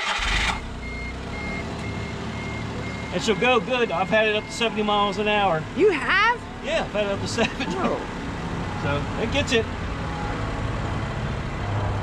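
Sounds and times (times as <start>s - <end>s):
car engine idling: 0.0s - 10.8s.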